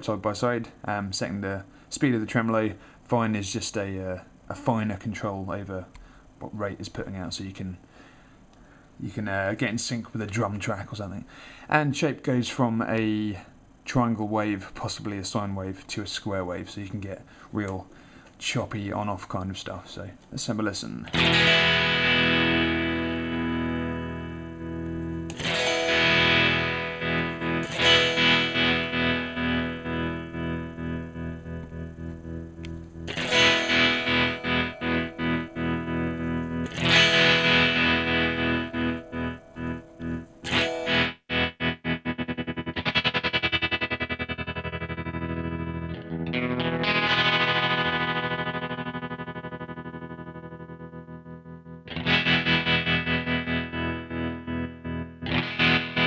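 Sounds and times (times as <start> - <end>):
electric guitar chords with tremolo: 21.1 - 56.0.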